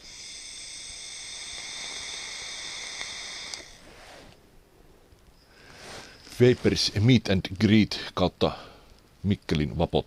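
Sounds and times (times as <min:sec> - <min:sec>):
e-cigarette hissing: 0:00.0 - 0:04.3
breath blowing out: 0:00.0 - 0:04.4.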